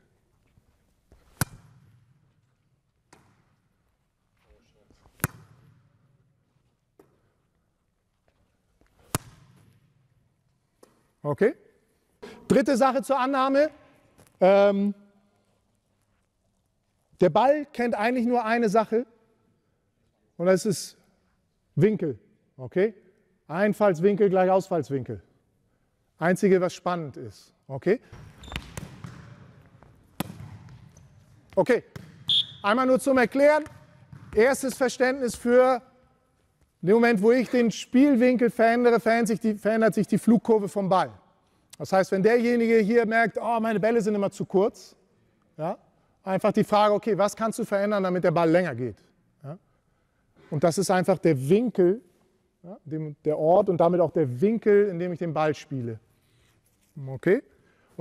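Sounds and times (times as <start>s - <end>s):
volleyball hits echoing in hall: 1.1s - 3.9s, 4.5s - 7.6s, 8.8s - 11.2s, 28.0s - 36.2s
volleyball smack: 1.2s - 1.9s, 5.2s - 5.7s, 9.0s - 9.7s, 30.1s - 30.8s.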